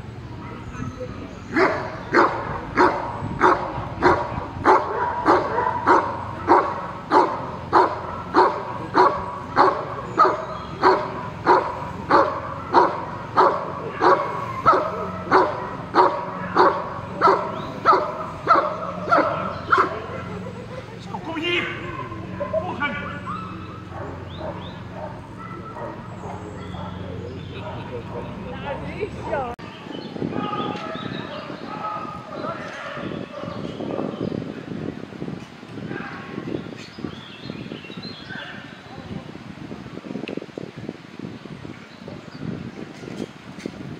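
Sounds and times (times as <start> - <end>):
dog barking: 0.4 - 20.4, 22.0 - 28.4, 31.7 - 33.7.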